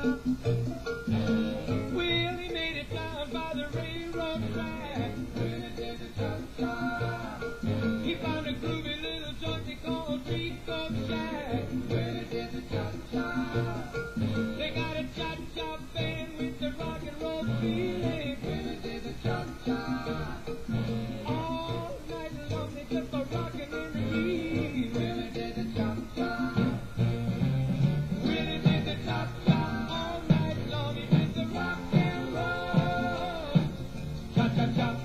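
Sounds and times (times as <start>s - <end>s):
rhythm and blues cha-cha music: 0.0s - 35.0s.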